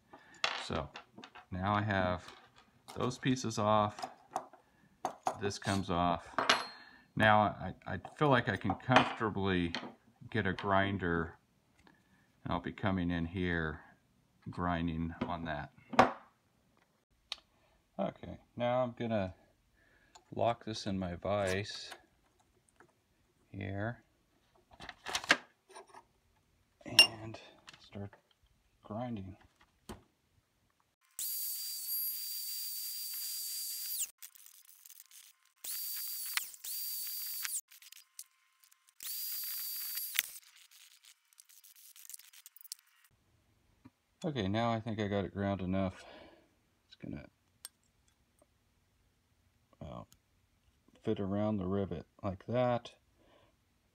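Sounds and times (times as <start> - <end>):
high-speed grinder whining: 31.2 - 38.0, 39.0 - 40.4.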